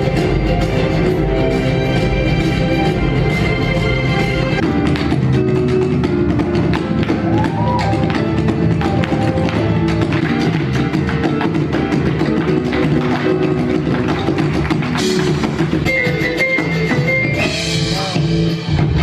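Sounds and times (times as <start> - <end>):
latin stage music: 0.0 - 19.0
boots stamping on stage floor: 4.6 - 16.1.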